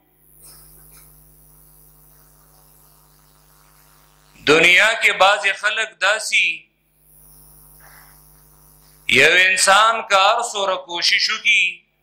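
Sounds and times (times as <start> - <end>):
faint electrical hum and hiss: 0.0 - 12.0.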